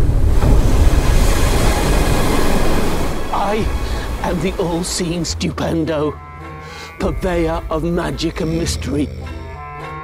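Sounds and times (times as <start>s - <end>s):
strong wind: 0.0s - 4.6s
sea surf: 0.0s - 5.6s.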